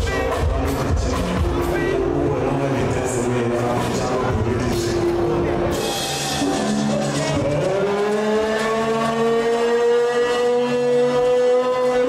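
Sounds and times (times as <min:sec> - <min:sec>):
live band steady chord: 0:00.0 - 0:07.4.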